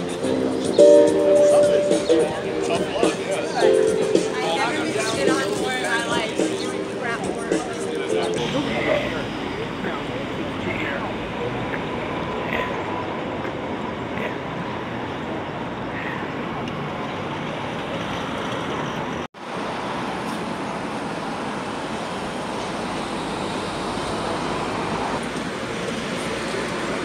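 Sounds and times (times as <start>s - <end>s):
city street traffic: 0.0s - 27.0s.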